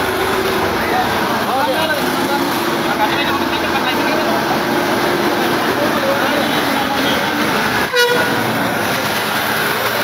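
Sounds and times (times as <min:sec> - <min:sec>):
vehicle engine humming: 0:00.0 - 0:10.0
people talking: 0:00.4 - 0:07.8, 0:08.8 - 0:10.0.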